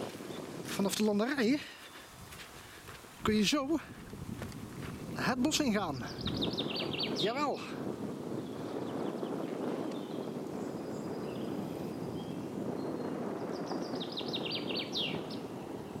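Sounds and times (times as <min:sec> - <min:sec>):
songbird singing: 0:00.0 - 0:02.2, 0:05.0 - 0:07.6, 0:08.2 - 0:16.0.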